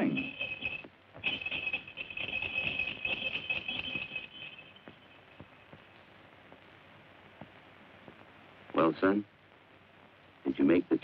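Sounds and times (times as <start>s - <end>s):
sleigh bells jingling: 0.0s - 5.7s.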